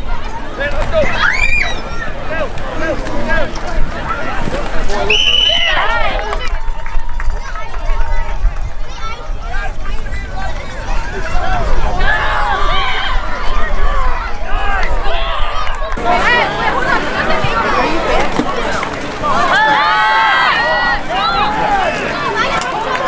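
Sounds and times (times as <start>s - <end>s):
spectators and players shouting: 0.0s - 23.0s.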